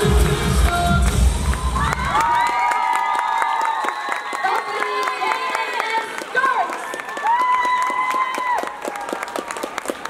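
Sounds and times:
audience applauding: 0:00.2 - 0:10.0.

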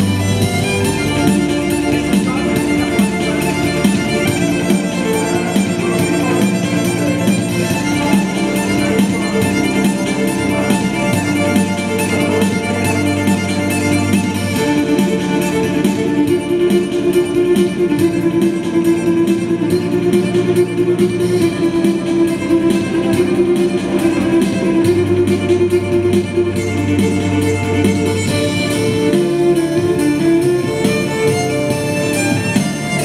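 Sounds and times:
bass line: 0:00.0 - 0:33.0
electric violin melody: 0:00.0 - 0:33.0
electronic backing beat: 0:00.0 - 0:33.0.

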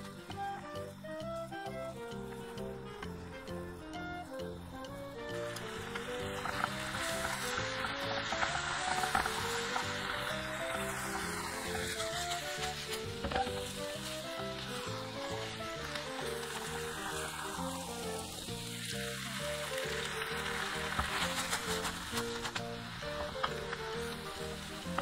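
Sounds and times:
background music: 0:00.0 - 0:25.0
noodles sizzling in a pan: 0:00.0 - 0:25.0.

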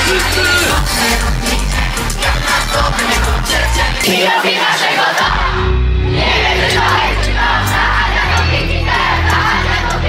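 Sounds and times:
person singing: 0:00.0 - 0:05.5
pop music with heavy bass beat: 0:00.0 - 0:10.0.

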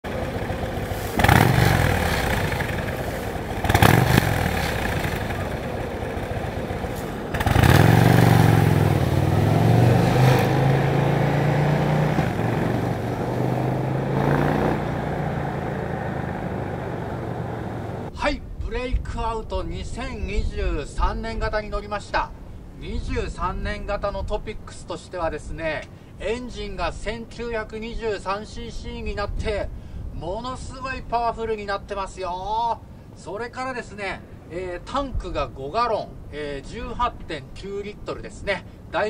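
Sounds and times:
motorcycle engine idling and revving: 0:00.0 - 0:18.1
motorcycle accelerating away: 0:00.1 - 0:18.1.

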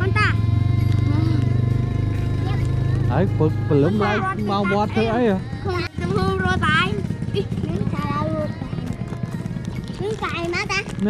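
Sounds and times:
child speaking: 0:00.0 - 0:00.4, 0:01.1 - 0:01.4, 0:03.9 - 0:05.1, 0:05.7 - 0:08.8, 0:10.0 - 0:11.0
motorbike engine idling: 0:00.0 - 0:11.0.

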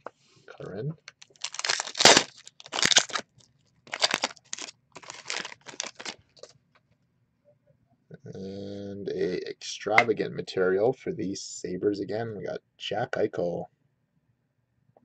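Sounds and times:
wrappers tearing and crinkling: 0:01.2 - 0:06.5.

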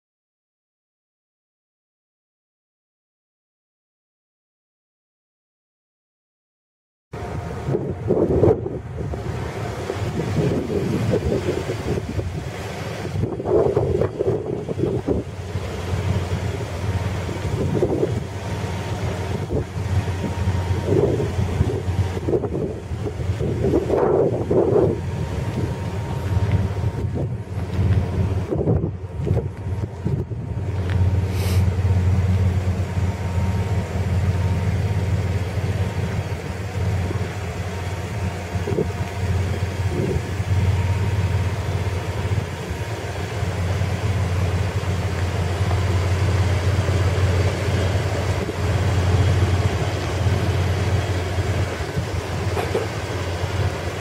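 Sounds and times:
engine idling: 0:07.2 - 0:54.0.

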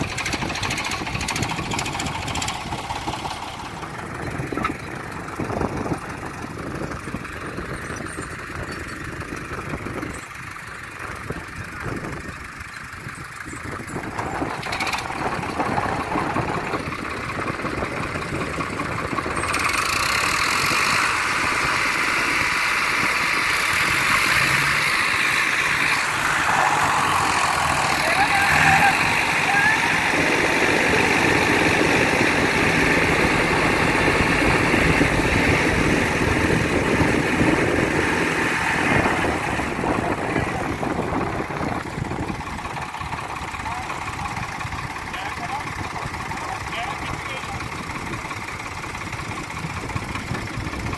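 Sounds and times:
diesel tractor engines revving: 0:00.0 - 0:50.9.

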